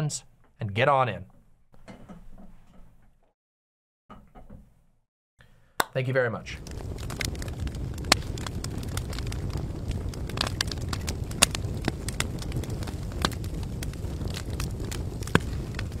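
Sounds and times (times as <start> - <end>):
crackling fire: 6.4 - 16.0.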